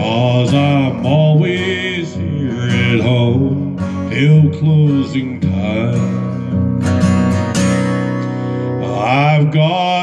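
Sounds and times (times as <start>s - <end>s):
man singing country song: 0.0s - 10.0s
strummed acoustic guitar: 0.0s - 10.0s.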